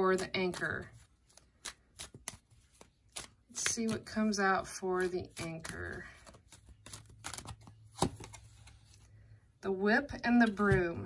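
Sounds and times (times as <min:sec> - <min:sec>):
cards shuffling: 0:00.1 - 0:09.2.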